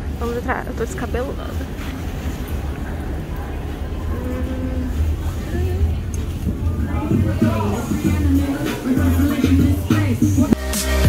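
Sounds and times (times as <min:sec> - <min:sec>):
wind rumbling on microphone: 0:00.0 - 0:08.9
outdoor street noise: 0:00.0 - 0:11.0.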